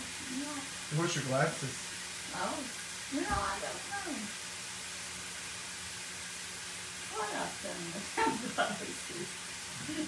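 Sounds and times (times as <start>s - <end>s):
meat sizzling in a pan: 0.0s - 10.0s.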